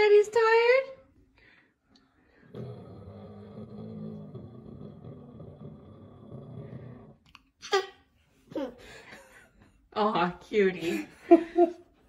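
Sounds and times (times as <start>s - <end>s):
man's low vocal drone: 2.5s - 7.2s.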